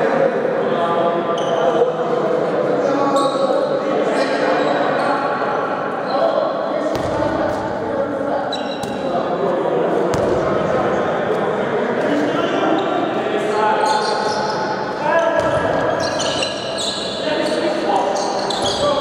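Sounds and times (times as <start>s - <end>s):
ball bouncing on court floor: 6.9s - 7.6s, 10.1s - 10.6s, 15.4s - 16.0s
high squeaks: 16.0s - 17.5s.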